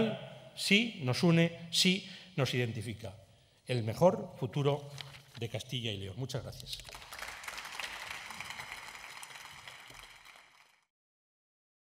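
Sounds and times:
many hands clapping: 6.6 - 10.9.

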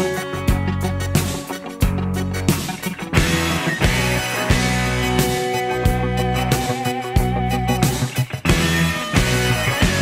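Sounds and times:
rock guitars and bass chords: 0.0 - 10.0.

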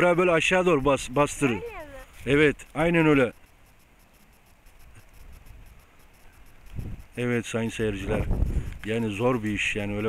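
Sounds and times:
quiet field ambience: 0.0 - 10.0.

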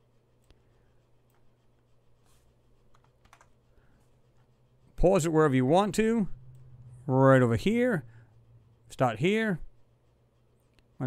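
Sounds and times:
low steady hum: 0.0 - 11.0
keyboard clicks: 2.9 - 3.5.

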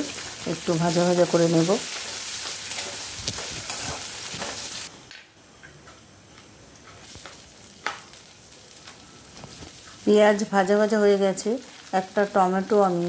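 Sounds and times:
onions sizzling in hot oil: 0.0 - 4.9, 6.8 - 13.0
metal spatula scraping: 1.8 - 4.9.

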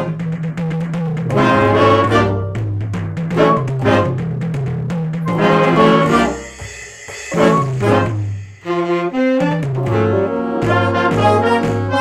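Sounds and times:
jazz band playing: 1.0 - 12.0.

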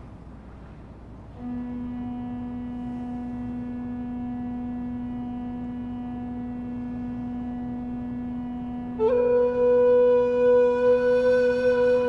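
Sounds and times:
low organ drone: 1.3 - 12.0
recorder holding long note: 1.3 - 12.0.

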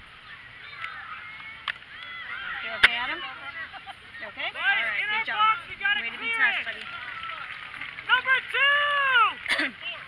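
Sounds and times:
distant shouts and calls: 0.0 - 10.0.

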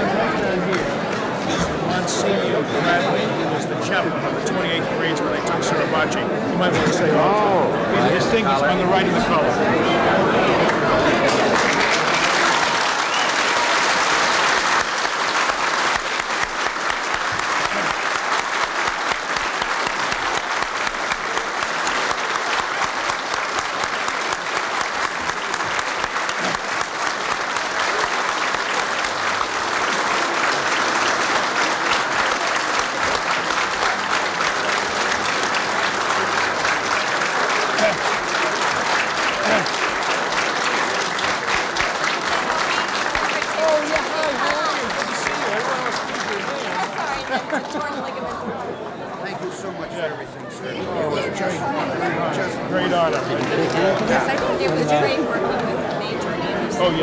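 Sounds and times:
crowd applauding: 0.0 - 3.6, 6.8 - 49.2, 50.8 - 57.0.

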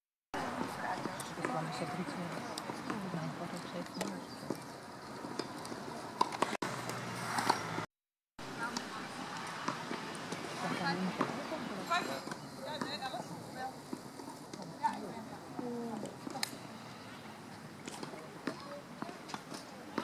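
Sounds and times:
tennis balls struck and bounced: 0.4 - 7.8, 8.5 - 15.1, 17.8 - 20.0.

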